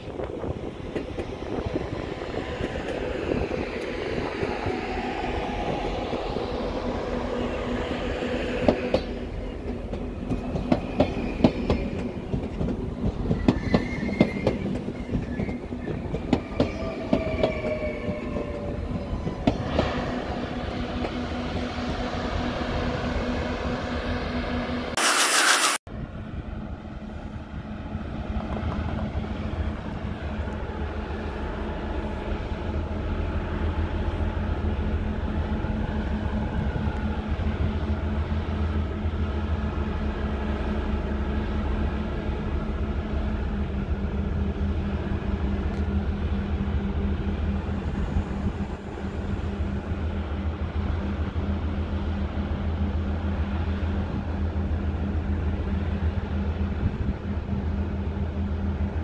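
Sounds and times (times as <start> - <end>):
railcar idling hum: 0.0 - 59.0
wheel squeals: 13.2 - 18.5
short loud burst of noise: 25.0 - 25.8.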